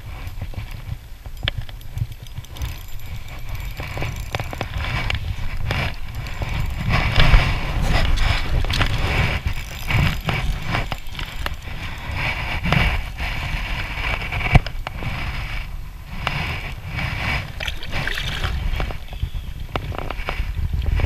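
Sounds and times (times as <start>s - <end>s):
wind on microphone: 0.0s - 21.0s
fishing reel clicking: 0.1s - 15.3s, 16.1s - 20.3s
handling noise: 0.1s - 21.0s.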